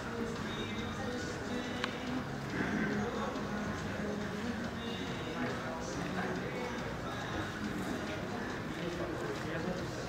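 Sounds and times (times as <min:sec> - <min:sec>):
people talking: 0:02.6 - 0:10.0.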